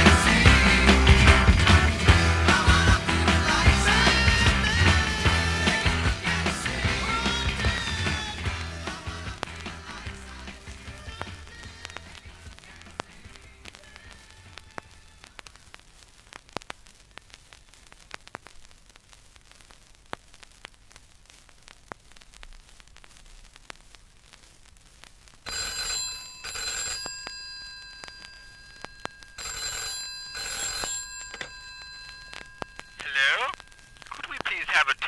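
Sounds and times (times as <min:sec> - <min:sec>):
vinyl record crackle and clicks: 0:00.0 - 0:35.0
telephone bell ringing: 0:25.5 - 0:34.2.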